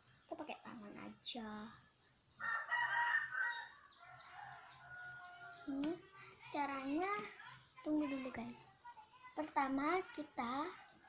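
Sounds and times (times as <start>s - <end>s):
rooster crowing: 2.4s - 5.7s.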